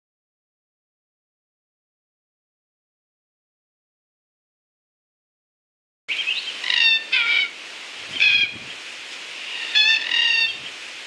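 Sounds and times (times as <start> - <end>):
bird calling: 6.1 - 8.8, 9.4 - 10.8
steady outdoor hiss: 6.1 - 11.0.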